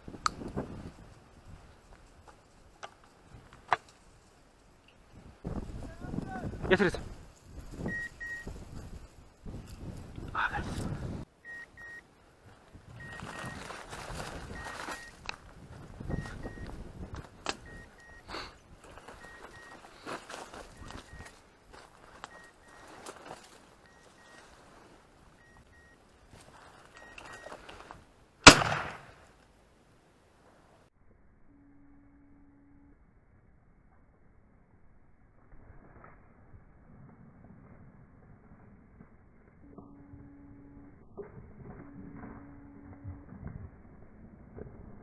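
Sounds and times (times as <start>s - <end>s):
footsteps: 12.5s - 28.0s
rustling brush: 12.6s - 16.1s, 17.3s - 25.4s
shotgun shot: 28.4s - 29.2s.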